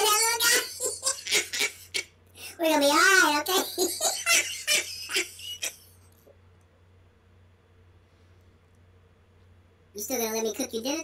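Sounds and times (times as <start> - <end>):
snickering laughter: 0.5 - 2.1, 3.6 - 6.0.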